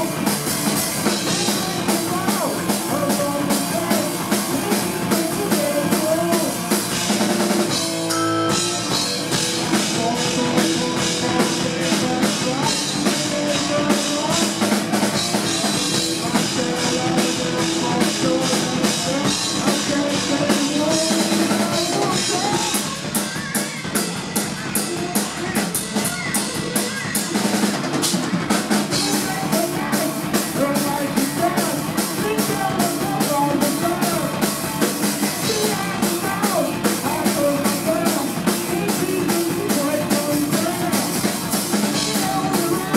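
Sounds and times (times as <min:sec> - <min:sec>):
distorted electric guitar: 0:00.0 - 0:42.9
drum kit playing: 0:00.0 - 0:42.9
electric bass: 0:00.0 - 0:42.9.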